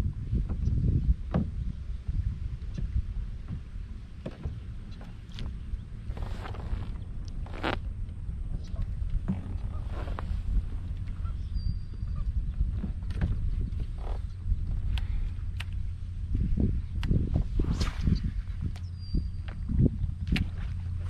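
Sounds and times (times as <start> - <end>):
wind rumbling on microphone: 0.0 - 21.0
dull knocks from boat: 1.3 - 1.6, 2.8 - 5.2
water lapping against kayak hull: 2.5 - 8.0.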